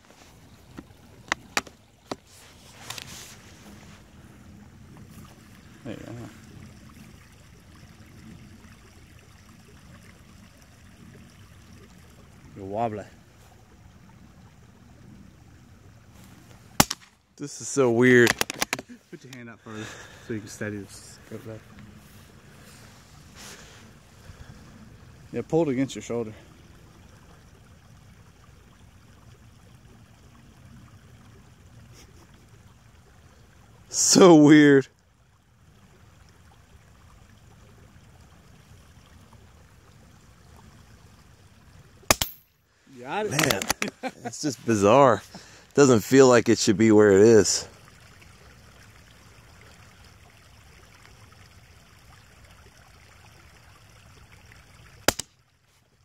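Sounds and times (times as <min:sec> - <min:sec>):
faint background hiss: 0:00.0 - 0:56.0
rifle shot: 0:16.8 - 0:17.1, 0:42.1 - 0:42.4, 0:55.1 - 0:55.3.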